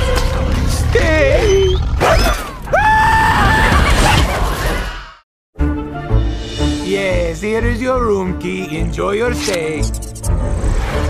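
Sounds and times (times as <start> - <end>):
cartoon character screaming: 2.0 - 4.0
trailer music: 5.6 - 11.0.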